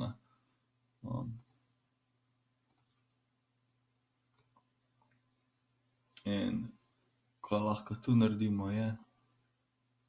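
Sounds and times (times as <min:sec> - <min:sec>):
computer mouse clicks: 0:01.3 - 0:01.6, 0:02.7 - 0:03.1, 0:04.3 - 0:05.2.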